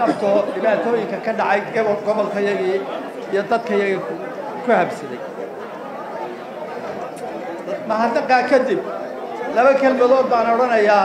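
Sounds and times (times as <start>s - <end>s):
man talking into microphones: 0.0s - 5.3s, 7.6s - 11.0s
voices chattering: 0.0s - 11.0s.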